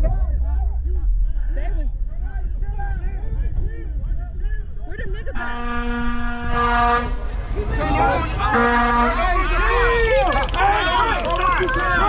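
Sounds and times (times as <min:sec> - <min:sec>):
crowd talking: 0:00.0 - 0:12.0
car horn blast: 0:05.4 - 0:07.3, 0:08.4 - 0:09.7.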